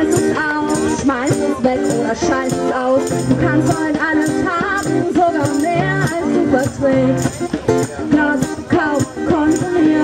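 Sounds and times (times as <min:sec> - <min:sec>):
acoustic guitar strumming: 0:00.0 - 0:10.0
woman singing: 0:00.0 - 0:10.0.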